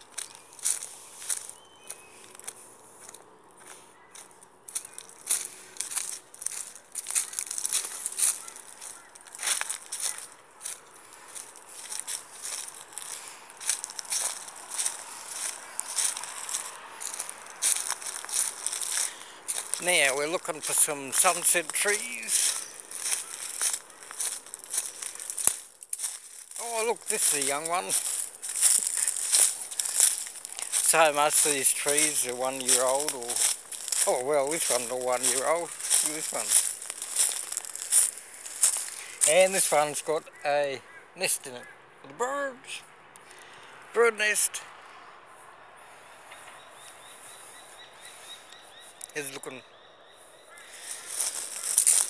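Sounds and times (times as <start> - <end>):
crackling rustling through bush: 0.0 - 41.5, 45.8 - 52.0.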